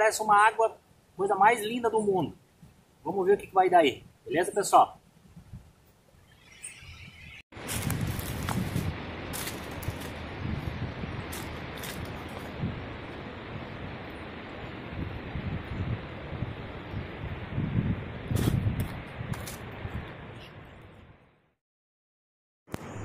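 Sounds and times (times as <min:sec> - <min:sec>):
wind buffeting microphone: 0:05.2 - 0:05.8, 0:07.6 - 0:21.1.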